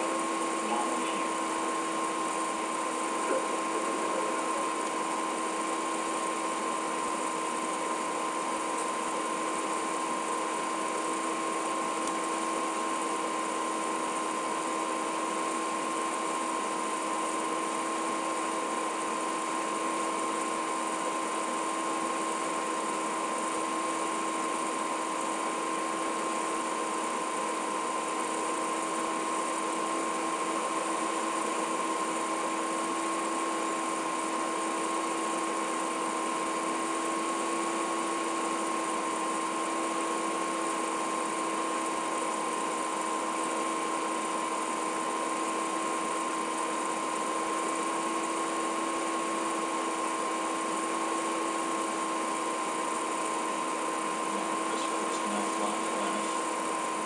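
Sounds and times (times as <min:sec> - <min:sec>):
mid-pitched hum: 0:00.0 - 0:57.0.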